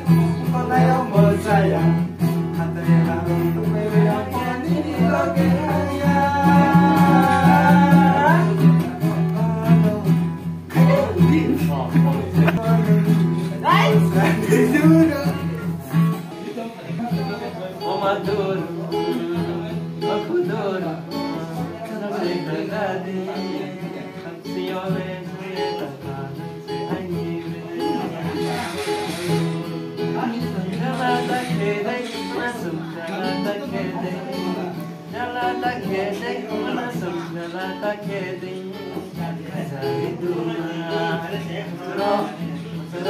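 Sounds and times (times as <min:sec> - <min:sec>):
acoustic guitar strumming: 0:00.0 - 0:43.0
man singing: 0:00.0 - 0:43.0.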